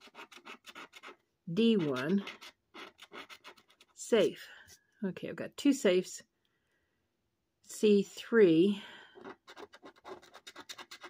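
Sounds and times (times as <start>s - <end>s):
coin scraping scratch card: 0.0s - 4.0s, 9.2s - 11.0s.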